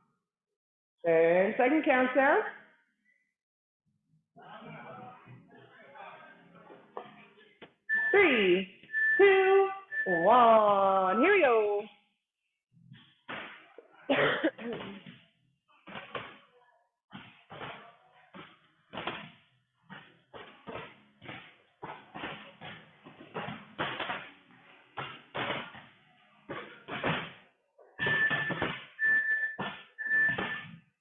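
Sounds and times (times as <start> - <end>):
interval timer beeps: 7.9 - 11.4, 28.0 - 30.7
thuds and slams of exercise: 25.0 - 27.4.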